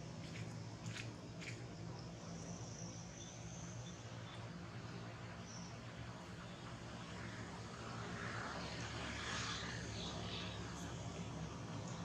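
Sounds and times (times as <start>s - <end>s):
distant engine noise: 0.0s - 12.0s.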